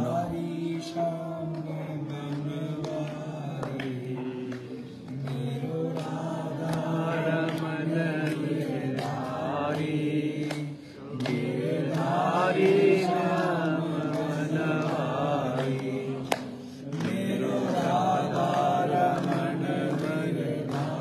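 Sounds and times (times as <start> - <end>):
voices chanting: 0.0 - 21.0.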